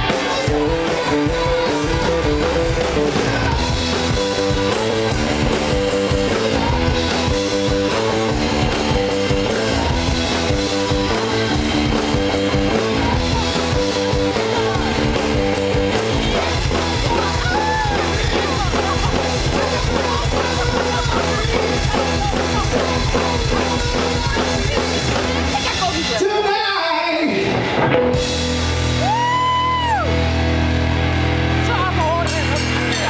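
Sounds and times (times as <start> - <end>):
drum kit: 0.0 - 26.6, 27.2 - 33.0
electric guitars: 0.0 - 33.0
live rock band playing: 0.0 - 33.0.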